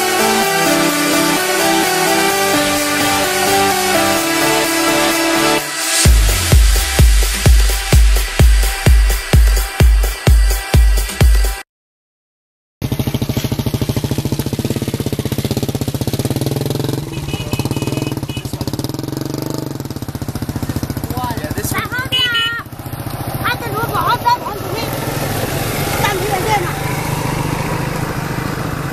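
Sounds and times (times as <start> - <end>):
small engine running: 12.8 - 28.9.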